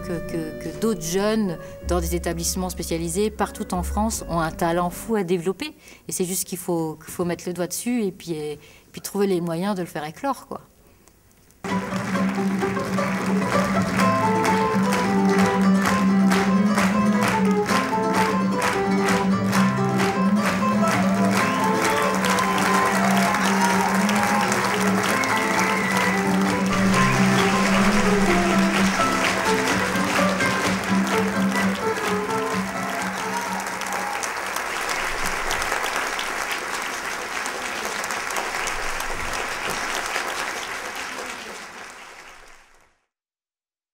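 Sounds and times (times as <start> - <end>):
audience applauding: 11.6 - 43.1
music with held notes: 11.7 - 34.3.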